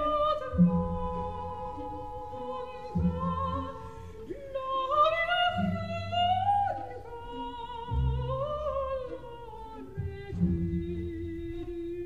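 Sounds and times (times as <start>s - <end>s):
soprano singing with vibrato: 0.0s - 12.0s.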